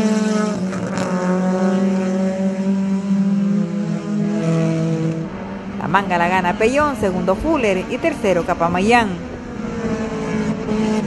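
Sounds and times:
race car engines at high revs: 0.0 - 11.0.

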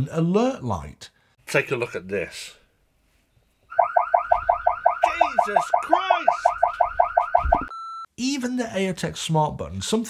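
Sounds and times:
siren warbling chirps: 3.7 - 7.7.

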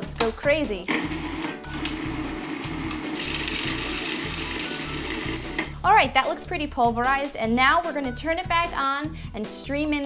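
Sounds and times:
food processor chopping: 0.9 - 5.7.

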